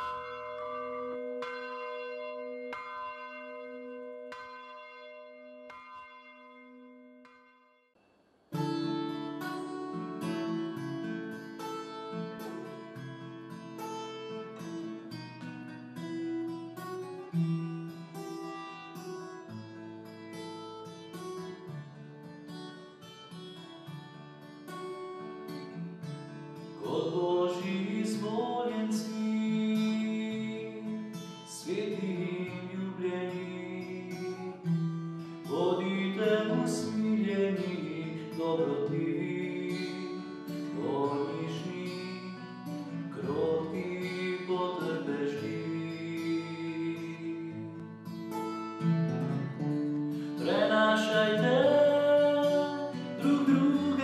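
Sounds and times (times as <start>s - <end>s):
acoustic guitar playing: 0.0s - 7.4s, 8.5s - 54.0s
church bell ringing: 0.0s - 7.7s.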